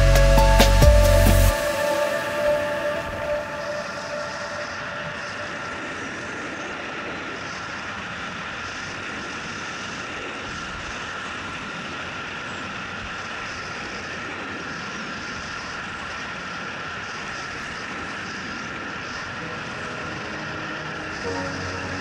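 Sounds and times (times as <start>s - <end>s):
faint steady hum: 0.0s - 22.0s.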